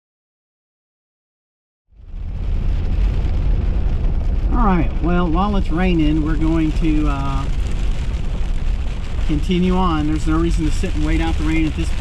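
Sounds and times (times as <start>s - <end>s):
car engine and road rumble: 1.9s - 12.0s
hiss of rain: 2.0s - 12.0s.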